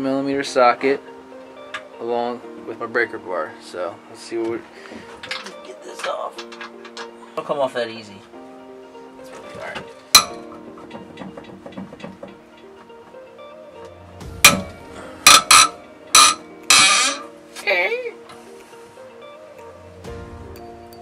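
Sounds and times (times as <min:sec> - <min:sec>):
background music: 0:00.0 - 0:21.0
bolts cracking loose: 0:05.2 - 0:07.1, 0:09.5 - 0:12.9, 0:14.5 - 0:17.3.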